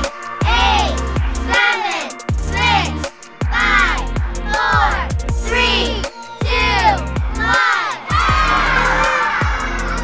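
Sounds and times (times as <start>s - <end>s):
upbeat electronic music: 0.0s - 10.0s
children shouting and cheering: 0.4s - 10.0s.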